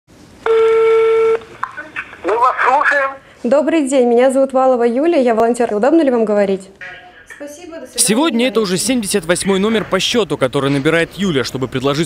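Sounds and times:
telephone ringback tone: 0.5 - 1.4.

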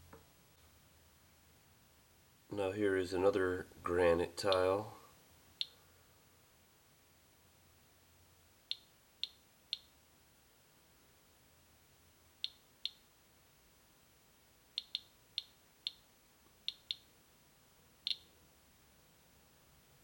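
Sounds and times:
geiger counter clicking: 14.8 - 16.0, 16.6 - 17.1, 18.0 - 18.3.

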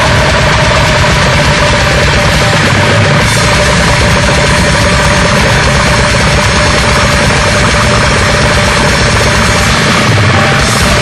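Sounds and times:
distorted metal guitars: 0.0 - 11.0
very fast drumming: 0.0 - 11.0.

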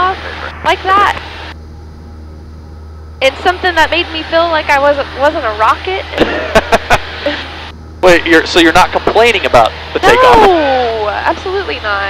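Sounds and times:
aircraft engine drone: 0.0 - 12.0
woman laughing over intercom: 6.2 - 7.6.

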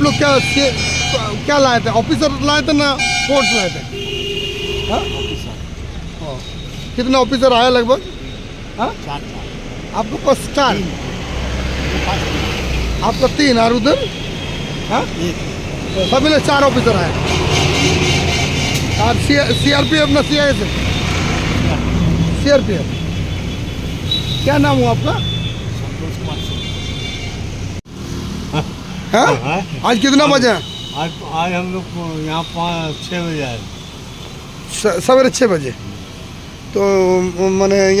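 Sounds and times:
street traffic hum: 0.0 - 38.0
vehicle engine rumbling: 0.0 - 38.0.

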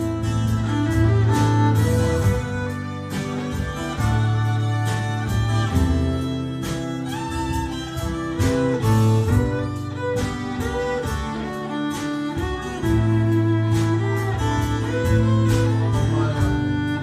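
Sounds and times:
drum kit steady beat: 0.0 - 17.0
strummed acoustic guitar: 0.0 - 17.0
violin melody: 0.0 - 17.0.

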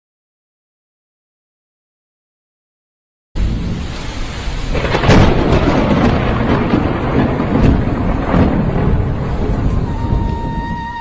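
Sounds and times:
rain hiss: 3.4 - 11.0
thunder rumble: 3.4 - 11.0.

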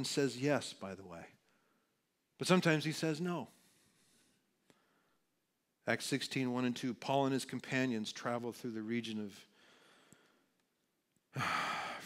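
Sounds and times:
man sighing: 11.3 - 12.0.

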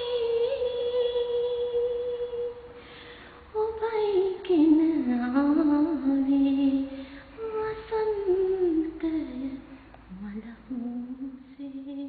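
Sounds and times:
woman singing slow melody: 0.0 - 2.9, 3.5 - 12.0.

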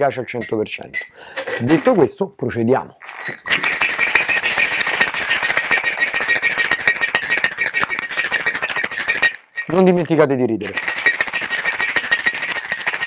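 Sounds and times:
ice rattling in cocktail shaker: 3.0 - 13.0.

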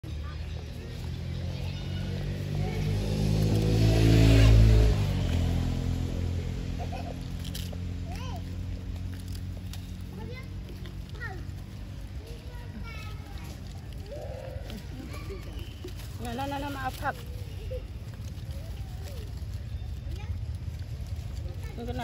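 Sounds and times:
vehicle motor passing: 0.1 - 22.0.

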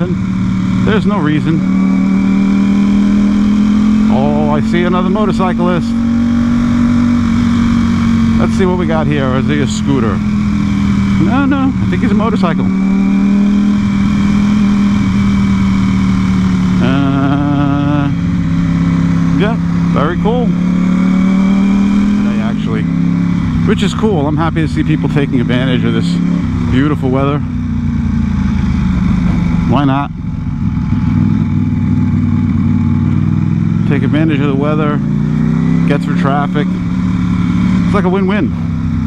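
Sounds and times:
motorcycle engine running: 0.0 - 39.0
road and wind noise: 0.0 - 39.0.

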